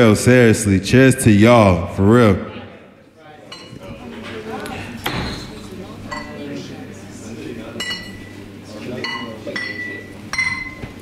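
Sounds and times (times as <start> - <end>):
murmur of crowd chatter: 0.0 - 11.0
glassware clinking: 3.5 - 6.4, 7.7 - 11.0.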